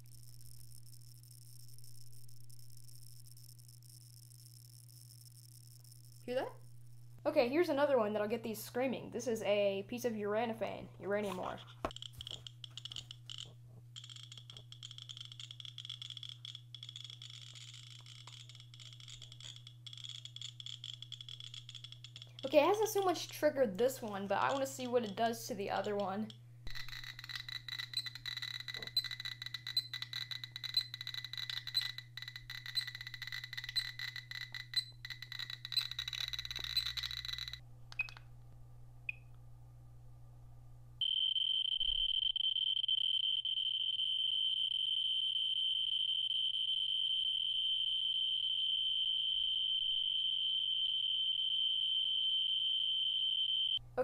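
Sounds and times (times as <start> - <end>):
radiation detector clicking: 11.9 - 38.3.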